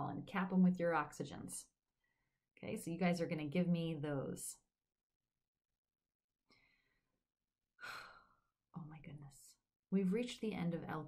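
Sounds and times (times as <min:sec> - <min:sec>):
woman speaking: 0:00.0 - 0:01.7, 0:02.6 - 0:04.6, 0:08.8 - 0:11.0
woman breathing: 0:06.5 - 0:07.2, 0:07.8 - 0:08.6.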